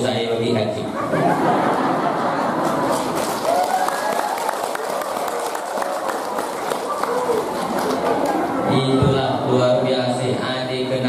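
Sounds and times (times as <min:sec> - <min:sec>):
audience chatter: 0:00.0 - 0:11.0
scattered handclaps: 0:02.6 - 0:08.4.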